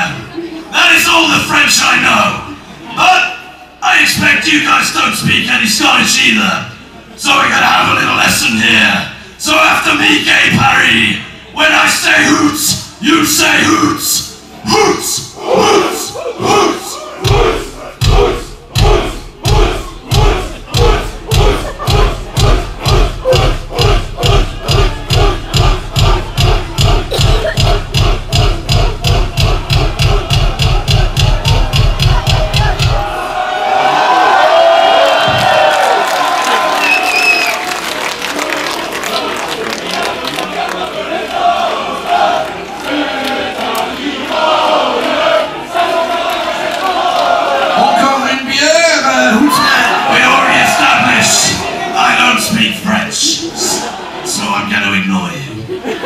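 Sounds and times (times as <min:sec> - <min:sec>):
crowd shouting and cheering: 0:00.0 - 0:56.0
bass drum beating: 0:17.2 - 0:33.4.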